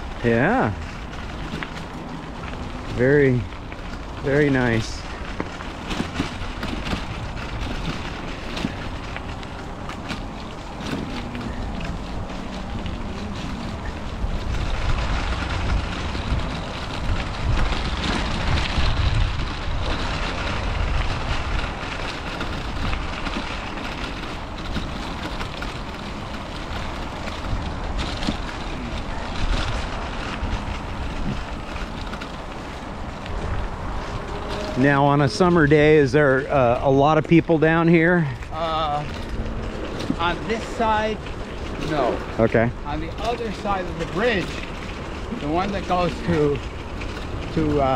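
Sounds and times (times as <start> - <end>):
bicycle tyres rolling on gravel: 0.0 - 47.9
wind buffeting microphone: 0.0 - 47.9.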